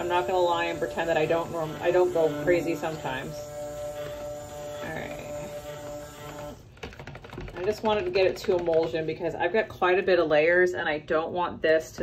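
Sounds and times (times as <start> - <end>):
stick blender motor whine: 0.0 - 6.7.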